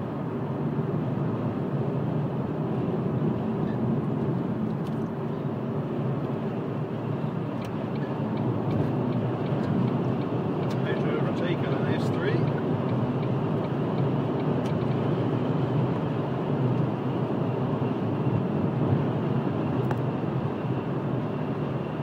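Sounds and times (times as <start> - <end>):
car engine hum: 0.0 - 22.0.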